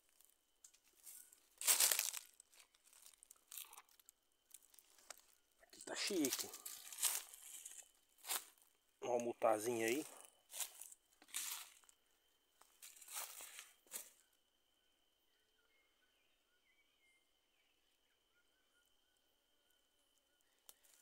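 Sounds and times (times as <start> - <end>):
faint chirps: 0.2 - 21.0
dry leaf litter rustling: 0.9 - 5.0, 5.8 - 8.6, 9.2 - 11.9, 12.8 - 14.1.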